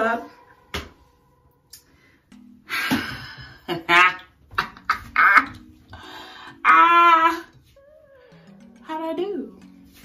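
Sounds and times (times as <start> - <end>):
woman yelling excitedly: 6.6 - 7.5.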